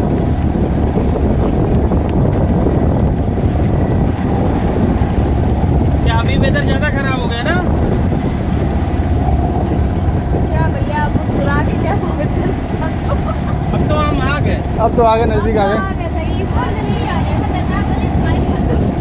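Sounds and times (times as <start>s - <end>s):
motorboat engine: 0.0s - 19.0s
wind buffeting microphone: 0.0s - 19.0s.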